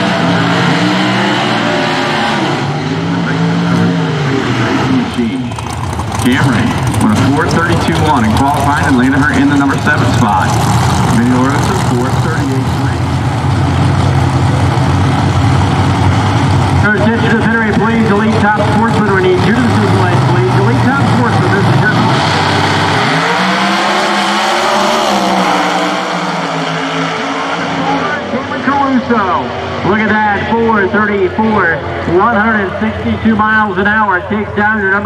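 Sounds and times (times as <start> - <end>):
drag car engines droning and launching: 0.0 - 35.0.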